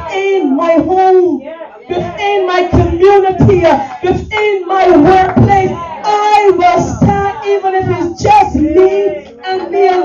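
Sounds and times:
high voice singing: 1.9 - 10.0.

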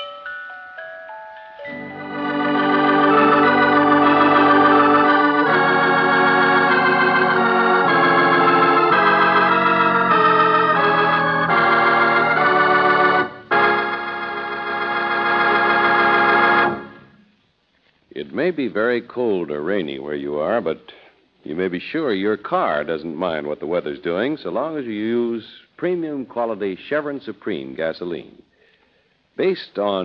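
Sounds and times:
organ chords: 1.7 - 17.2.

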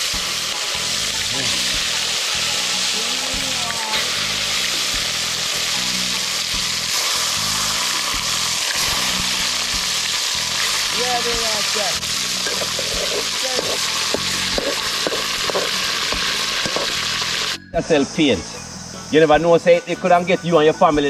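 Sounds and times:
fish frying in hot oil: 0.0 - 17.6.

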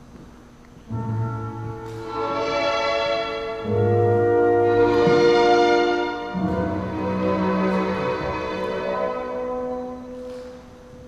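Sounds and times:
orchestral music: 0.9 - 11.0.

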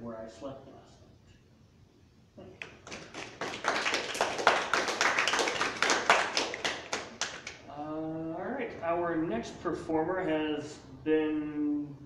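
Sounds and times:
small audience applauding: 2.6 - 7.7.

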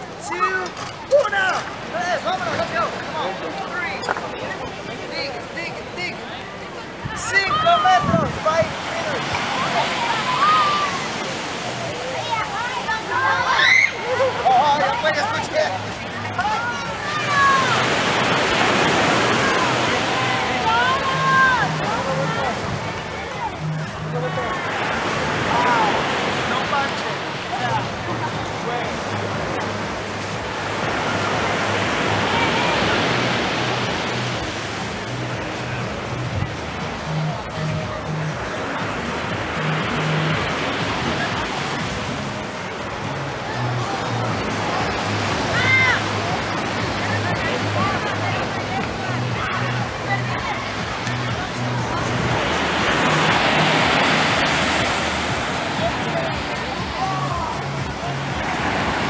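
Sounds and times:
surf washing onto beach: 0.0 - 59.0
music bass line: 15.2 - 26.4, 27.1 - 59.0.

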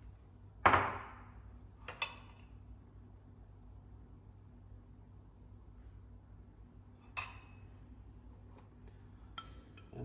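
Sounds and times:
metal spoon clinking on glass: 7.0 - 7.7.

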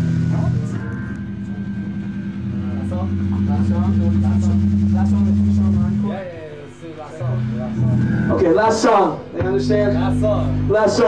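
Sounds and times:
sustained electric guitar chord: 0.0 - 11.0.

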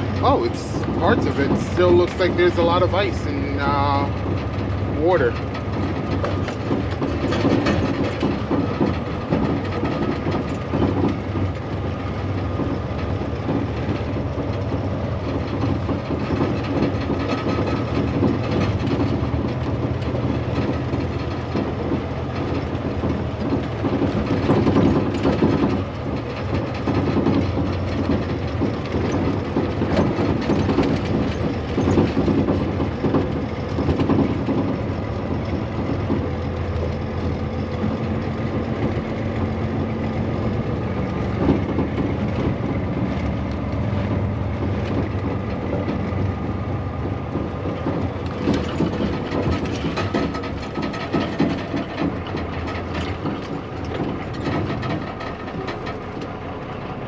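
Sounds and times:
cab and trailer rattling: 0.0 - 57.0
diesel engine running: 0.0 - 57.0.

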